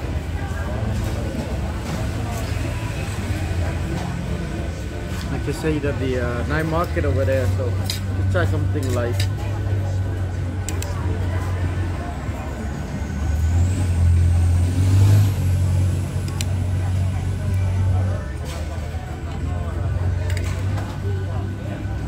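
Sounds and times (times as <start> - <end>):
distant voices: 0.0 - 22.0
low engine rumble: 0.0 - 22.0.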